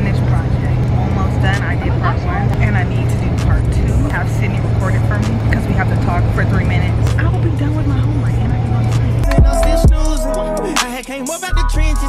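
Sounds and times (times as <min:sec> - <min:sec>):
bus engine drone from inside: 0:00.0 - 0:09.8
hip hop music: 0:00.0 - 0:12.0
voices: 0:00.0 - 0:12.0.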